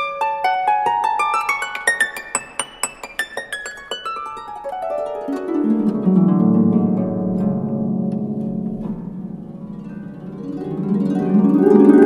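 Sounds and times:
harp notes plucked: 7.4 - 12.0.

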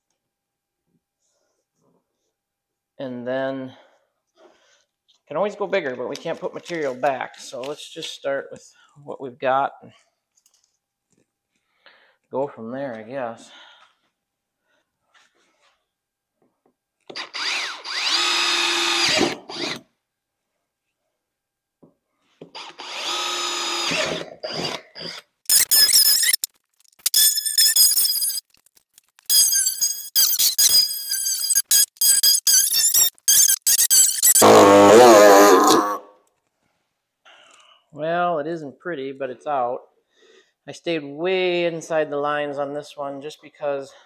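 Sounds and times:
power drill boring plastic: 17.1 - 19.9, 22.5 - 34.7
power tool cutting plastic: 17.1 - 19.9, 22.5 - 28.5, 29.3 - 36.0.

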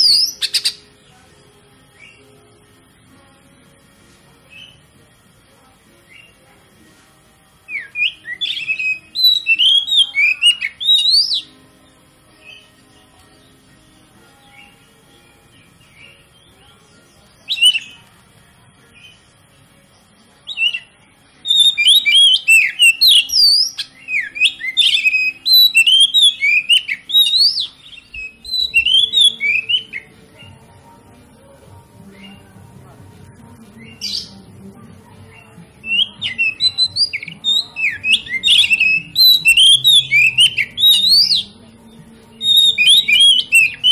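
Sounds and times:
bird singing whistled phrases: 0.0 - 0.8, 7.7 - 11.5, 17.5 - 18.0, 20.5 - 30.2, 35.8 - 41.6, 42.4 - 43.9.

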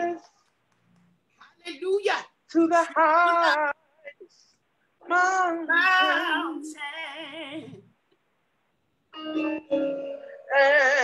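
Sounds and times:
woman singing with vibrato: 2.6 - 3.9, 5.0 - 7.9, 9.2 - 11.0.

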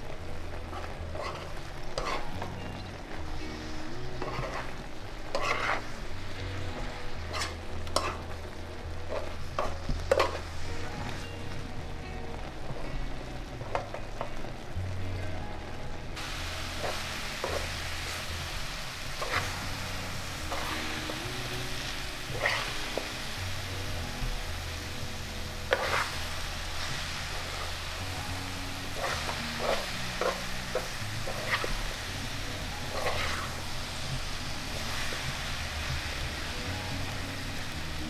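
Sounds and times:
syrup sizzling: 0.0 - 38.0
metal spoon scraping pan: 0.7 - 2.5, 4.1 - 6.0, 7.3 - 8.3, 9.1 - 10.4, 19.2 - 19.6, 20.4 - 21.2, 22.3 - 23.0, 25.6 - 26.3, 28.9 - 31.9, 32.8 - 33.7.

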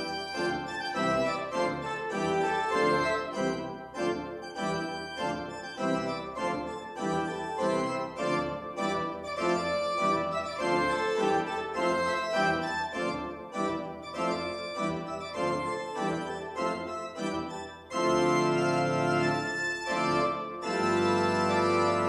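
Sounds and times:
pipe organ music: 0.0 - 22.0.

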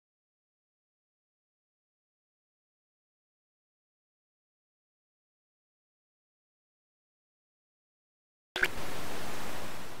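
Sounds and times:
television static hiss: 8.6 - 10.0.

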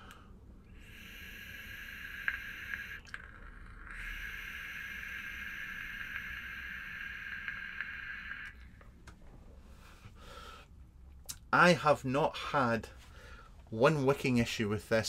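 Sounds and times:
air hissing through vape: 0.7 - 8.9
vape coil crackling: 0.8 - 9.2.

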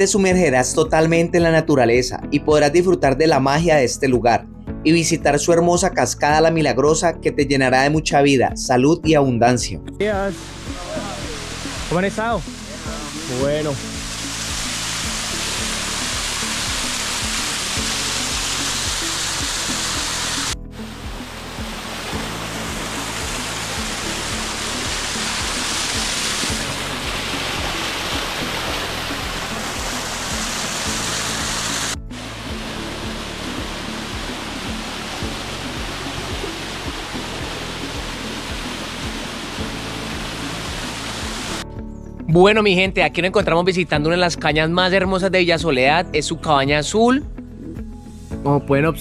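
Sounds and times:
background music: 0.0 - 49.0
waterfall pouring onto rocks: 10.5 - 41.6.

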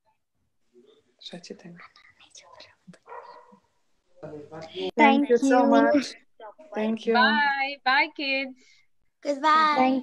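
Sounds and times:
faint overlapping voices: 0.0 - 10.0.

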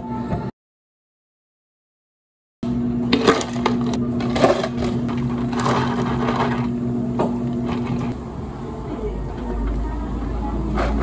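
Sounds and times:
low machine hum: 2.6 - 11.0
ice cubes crackling in plastic cups: 3.2 - 6.7.

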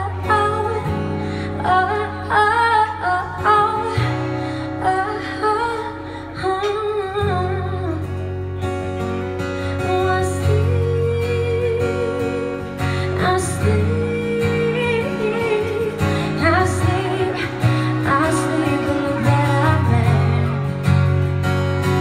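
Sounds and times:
woman singing: 0.0 - 8.7, 9.7 - 21.2
acoustic guitar: 0.0 - 22.0.

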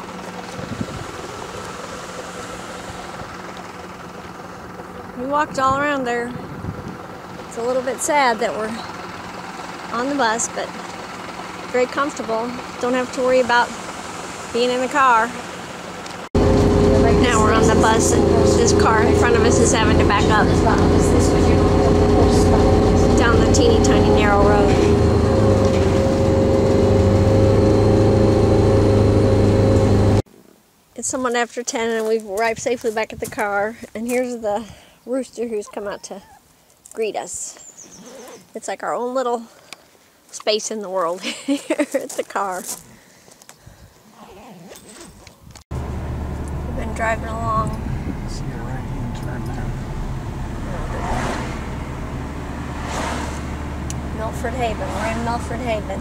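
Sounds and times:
road noise: 0.0 - 30.2, 44.9 - 56.0
bus engine humming: 0.0 - 30.3, 45.7 - 56.0
car driving inside cabin: 16.4 - 30.2, 45.8 - 56.0
faint outdoor sounds: 30.2 - 56.0.

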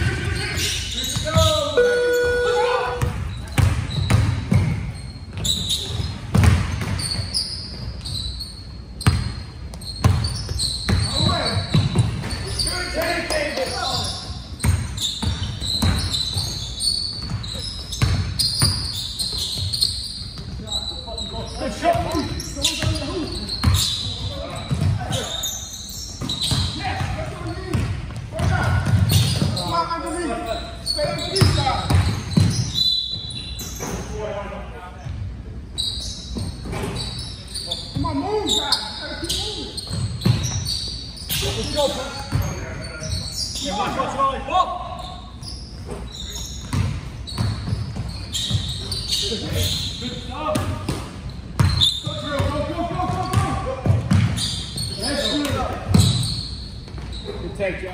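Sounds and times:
players calling out: 0.0 - 6.1
person calling out: 1.5 - 3.0
basketball bouncing on hardwood floor: 3.0 - 7.0, 9.0 - 12.2, 26.2 - 29.6, 31.4 - 32.7, 46.6 - 48.9, 52.4 - 54.4, 55.9 - 56.3.

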